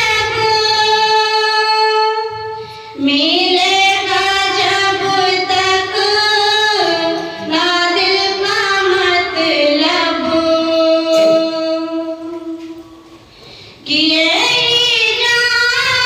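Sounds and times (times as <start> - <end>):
woman singing with vibrato: 0.0 - 12.9, 13.8 - 16.0
breath: 2.6 - 3.0, 13.2 - 13.9.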